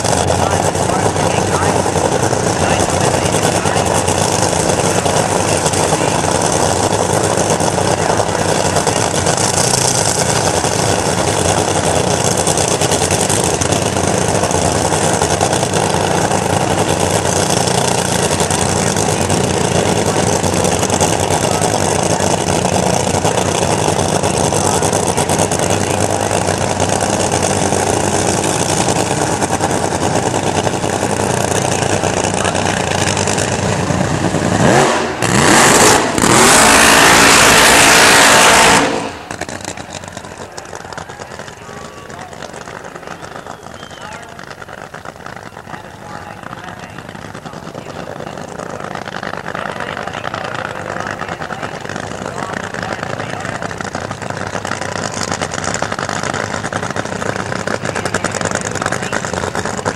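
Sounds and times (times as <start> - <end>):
supercharged engine idling and revving: 0.0 - 59.9.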